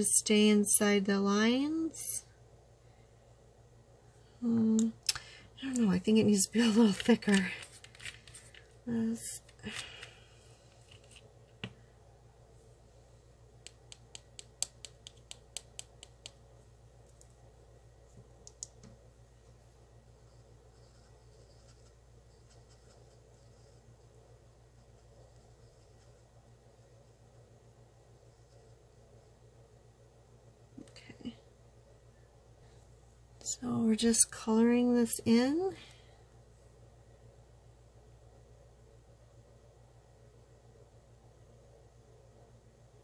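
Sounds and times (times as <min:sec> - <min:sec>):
faint steady hum: 0:00.0 - 0:43.0
brush tapping on palette: 0:13.6 - 0:16.4.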